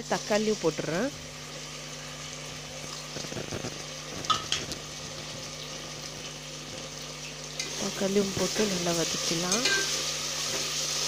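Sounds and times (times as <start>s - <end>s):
vegetables sizzling in oil: 0.0s - 11.0s.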